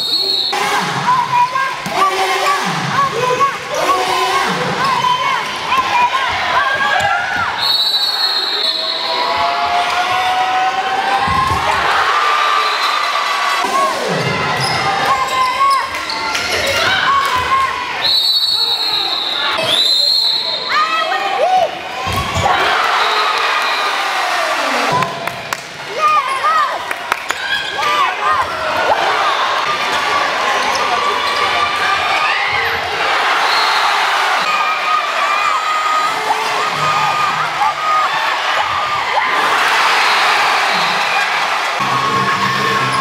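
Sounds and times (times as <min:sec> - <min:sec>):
voices in a hall: 0:00.0 - 0:43.0.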